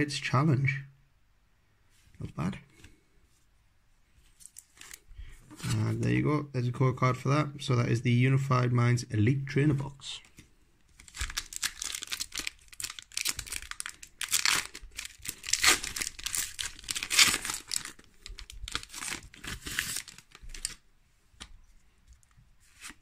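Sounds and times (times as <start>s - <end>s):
foil wrapper crackling and tearing: 11.0s - 20.8s.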